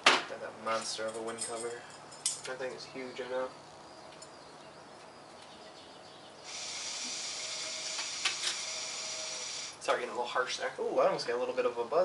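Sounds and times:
hookah hissing: 6.4 - 9.9.

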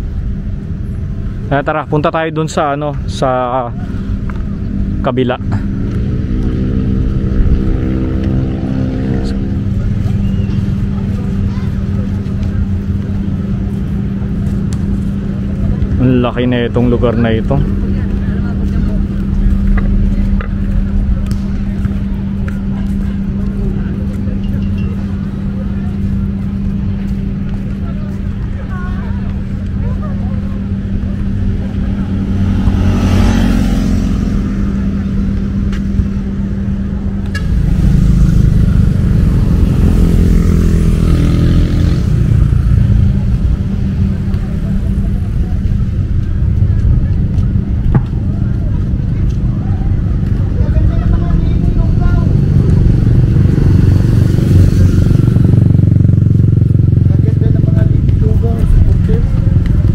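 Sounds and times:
vehicle engine hum and rumble: 0.0 - 59.9
vehicles passing by: 0.0 - 59.9.

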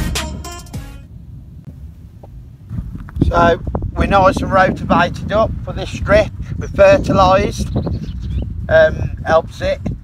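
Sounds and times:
wind rumble on microphone: 1.1 - 10.0.

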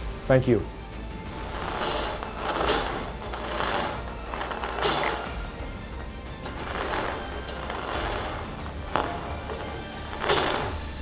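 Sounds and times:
balls rattling in turning cage: 1.5 - 10.8.

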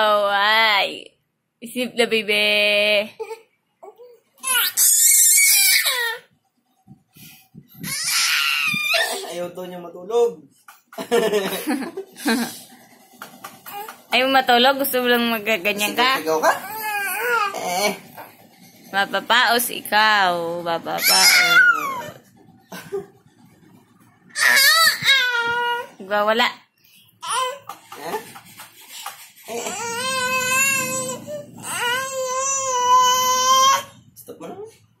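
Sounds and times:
baby screaming: 4.4 - 6.2, 7.8 - 9.2, 16.6 - 17.8, 21.0 - 22.2, 24.4 - 25.9, 29.5 - 33.9.

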